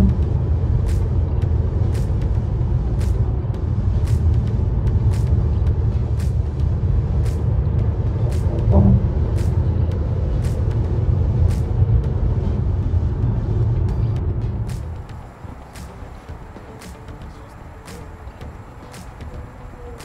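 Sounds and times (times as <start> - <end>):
music playing: 0.0 - 20.0
road and tyre rumble: 0.0 - 20.0
light sharp ticks: 6.2 - 6.6.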